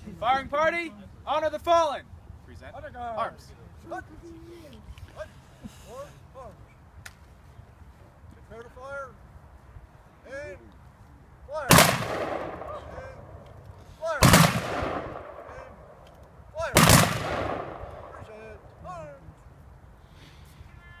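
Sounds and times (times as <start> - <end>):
rifle volleys echoing: 11.7 - 18.7.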